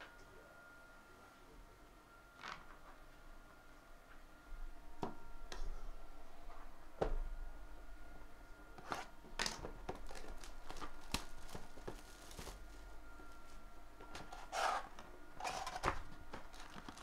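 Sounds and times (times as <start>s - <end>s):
cardboard rustling and scraping: 8.8s - 12.8s, 14.2s - 17.0s.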